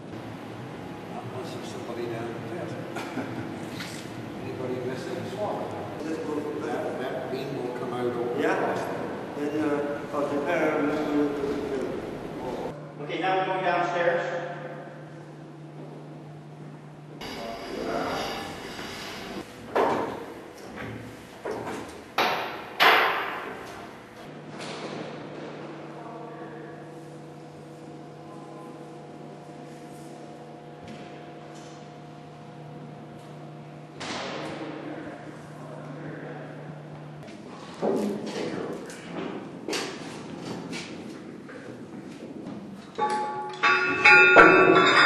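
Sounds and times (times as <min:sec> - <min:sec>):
steady low hum: 0:00.0 - 0:45.0
metallic knocks and clanks: 0:43.0 - 0:45.0.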